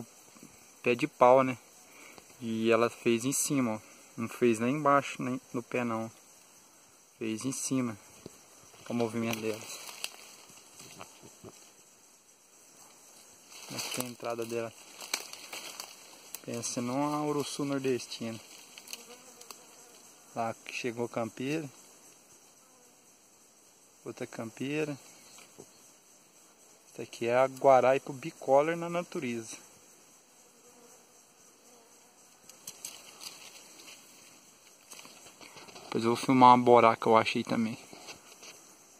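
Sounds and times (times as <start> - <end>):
faint outdoor hiss: 0.0 - 38.9
bees buzzing: 6.2 - 20.4.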